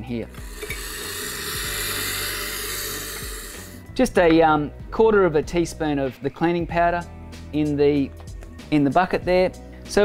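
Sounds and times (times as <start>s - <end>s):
hot water and steam hissing: 0.4s - 3.8s.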